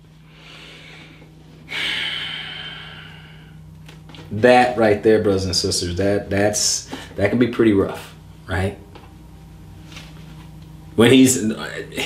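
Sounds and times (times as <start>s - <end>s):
man sighing: 0.4s - 3.6s.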